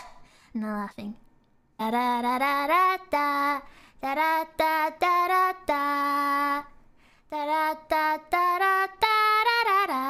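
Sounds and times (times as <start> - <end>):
woman singing unaccompanied: 1.8 - 10.0.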